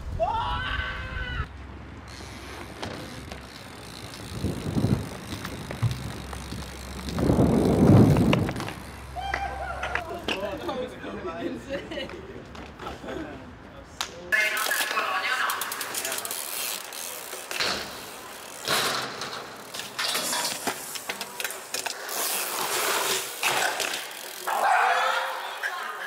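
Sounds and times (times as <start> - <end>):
tyres rolling on pavement: 1.5 - 13.3, 14.4 - 26.0
bike hub ticking: 2.1 - 10.1, 15.4 - 20.0, 24.1 - 24.5.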